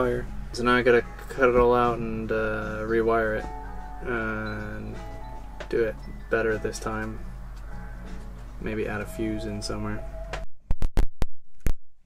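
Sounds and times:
background music: 0:00.0 - 0:10.4.

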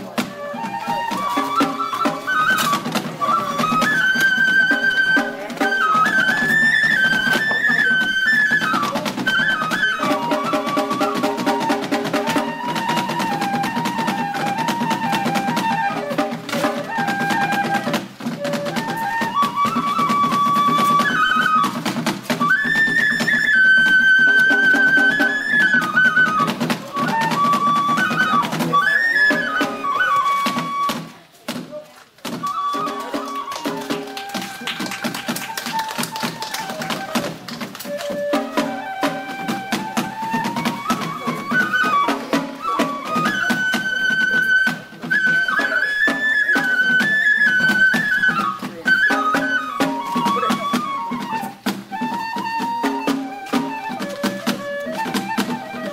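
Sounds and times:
bamboo flute melody: 0:00.0 - 0:55.9
drum beat: 0:00.0 - 0:55.9.

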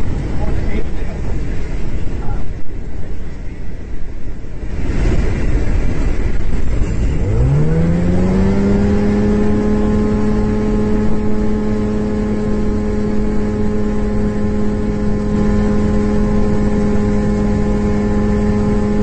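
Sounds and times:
propeller engine and wind rumble: 0:00.0 - 0:19.0
pitched drone: 0:06.5 - 0:19.0.

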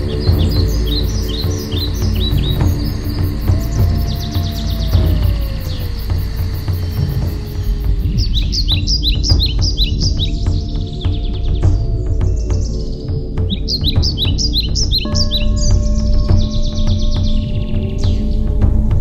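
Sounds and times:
bird trill: 0:00.0 - 0:18.6
low drone: 0:00.0 - 0:19.0
small birds chirping: 0:00.0 - 0:19.0.

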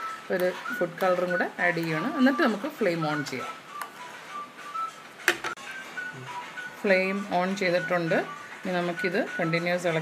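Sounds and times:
faint music with high notes: 0:00.0 - 0:10.0.

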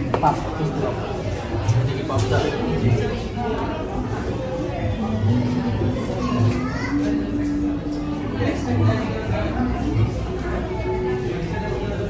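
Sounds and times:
indistinct restaurant voices: 0:00.0 - 0:12.0.

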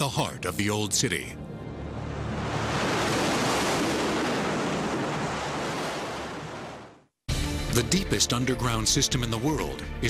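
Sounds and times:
loud rushing noise: 0:01.8 - 0:05.4.

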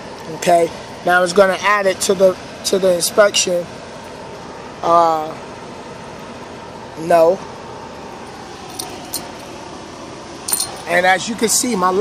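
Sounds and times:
steady background hum: 0:00.0 - 0:12.0
light metallic jingles: 0:08.6 - 0:09.5, 0:10.5 - 0:11.1.

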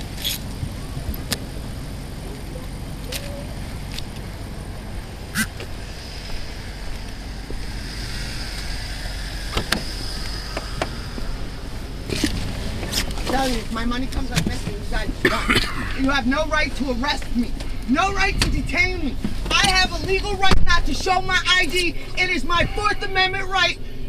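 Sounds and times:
street traffic rumble: 0:00.0 - 0:24.0.

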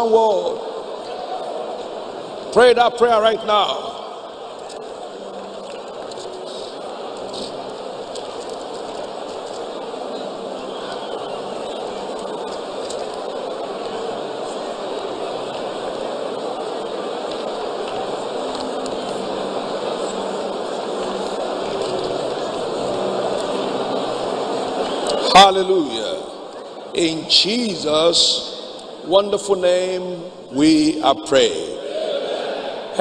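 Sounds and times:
congregation praying aloud: 0:24.6 - 0:33.0.

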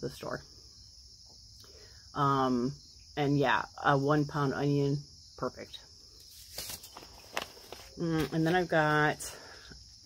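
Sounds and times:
high-pitched insect chorus: 0:00.0 - 0:10.0
paper packets rustling: 0:06.2 - 0:09.0.

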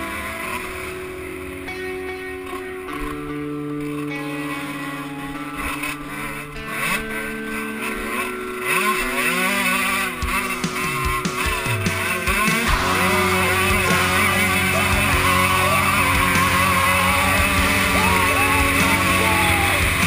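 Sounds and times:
dirt bike engine revving: 0:00.0 - 0:20.0
music playing: 0:00.0 - 0:20.0.

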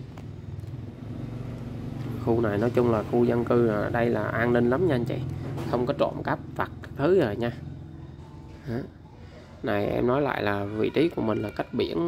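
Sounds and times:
vehicle engine humming: 0:00.0 - 0:10.7.

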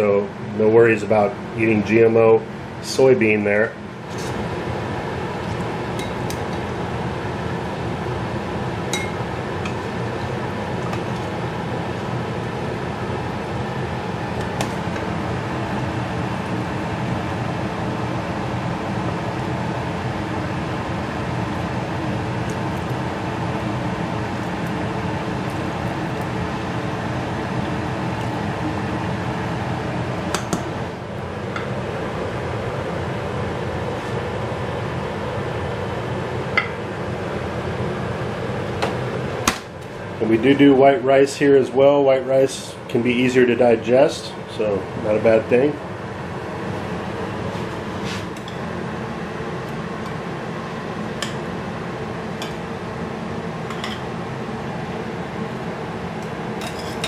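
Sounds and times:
kitchen fan whirring: 0:00.0 - 0:57.0
utensils clinking against pot: 0:08.9 - 0:11.1, 0:53.7 - 0:54.1, 0:56.6 - 0:57.0.

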